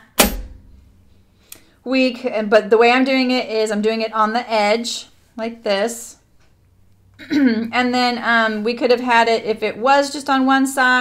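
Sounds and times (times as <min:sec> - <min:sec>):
sharp thump: 0:00.0 - 0:01.1
woman speaking: 0:07.4 - 0:11.0.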